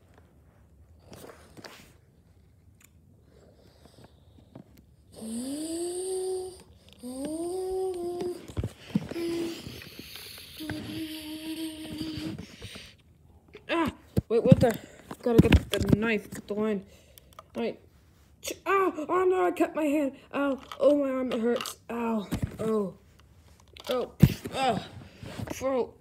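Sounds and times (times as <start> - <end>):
person humming long notes: 5.2 - 8.4, 10.6 - 12.4.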